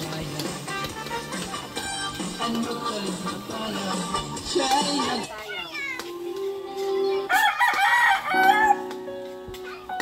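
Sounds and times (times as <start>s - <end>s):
rooster crowing: 7.3s - 8.9s.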